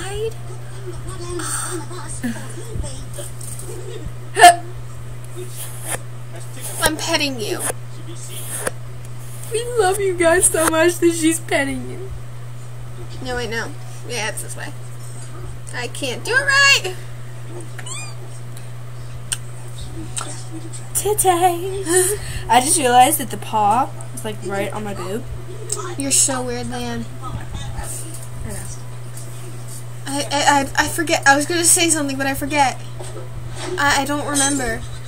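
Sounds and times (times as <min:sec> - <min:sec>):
steady low hum: 0:00.0 - 0:35.0
cat meowing: 0:17.8 - 0:18.2.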